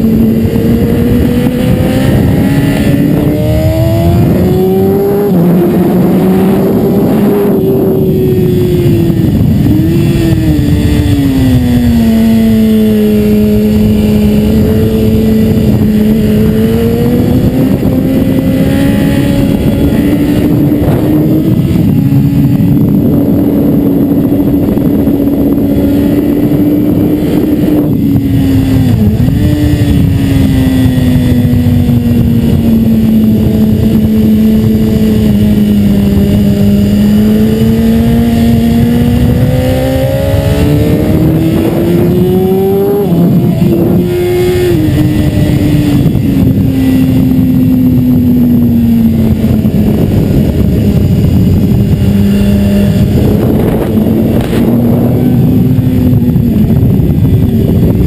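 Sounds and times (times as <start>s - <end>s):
motorcycle engine running hard: 0.0s - 58.0s
rushing wind noise: 0.0s - 58.0s.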